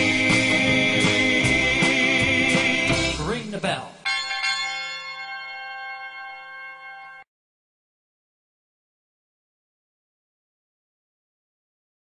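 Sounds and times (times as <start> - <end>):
metal bell ringing: 4.1 - 7.2.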